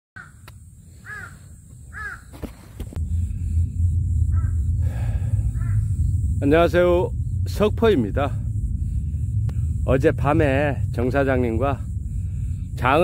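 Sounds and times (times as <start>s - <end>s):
crow cawing: 0.2s - 0.4s, 1.0s - 2.4s, 4.2s - 6.0s
steady low rumble: 0.5s - 13.0s.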